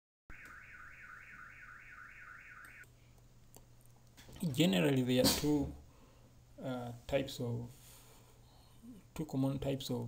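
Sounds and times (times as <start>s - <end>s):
electronic warbling tone: 0.3s - 2.8s.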